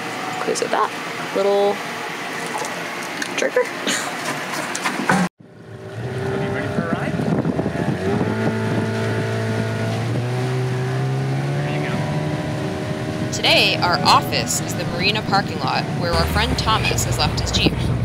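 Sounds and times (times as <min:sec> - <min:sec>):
outboard motor running: 0:00.0 - 0:18.0
wind on microphone: 0:05.9 - 0:11.2.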